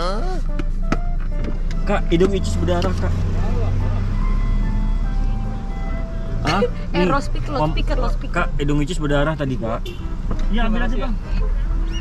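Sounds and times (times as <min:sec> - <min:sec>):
car cabin rumble: 0:00.2 - 0:12.0
simple tune of plain notes: 0:03.7 - 0:07.8.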